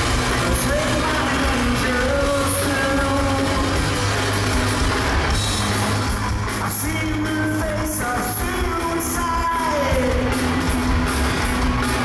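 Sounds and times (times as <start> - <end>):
live rock band instrumental: 0.0 - 12.0.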